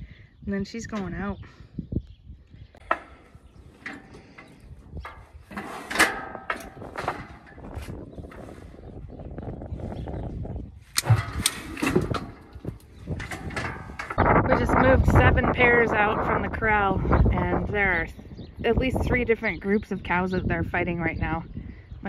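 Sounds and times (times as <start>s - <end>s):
metal chute clanking and rattling: 2.8s - 9.4s, 11.0s - 15.0s.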